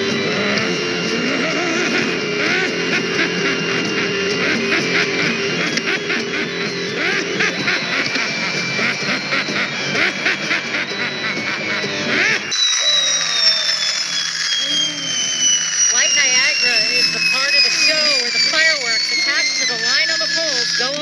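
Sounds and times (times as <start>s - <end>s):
amplified groaning and moaning: 0.0s - 12.5s
falling electronic tone: 0.0s - 21.0s.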